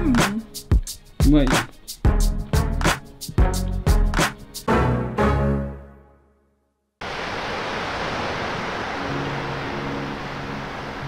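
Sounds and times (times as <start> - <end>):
ocean waves breaking: 7.0 - 11.0.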